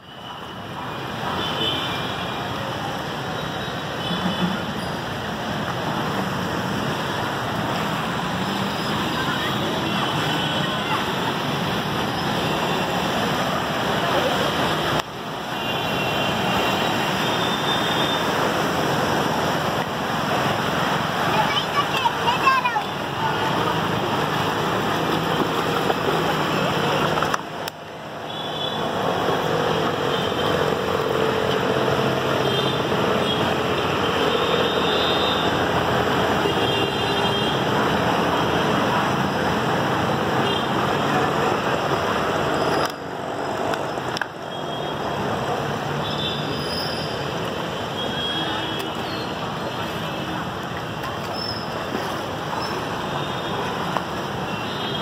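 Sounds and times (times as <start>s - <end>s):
rushing floodwater: 0.0s - 55.0s.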